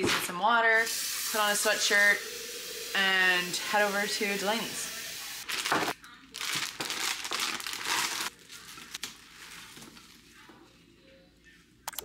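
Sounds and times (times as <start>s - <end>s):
plastic and paper wrapping crinkling: 5.4s - 10.5s.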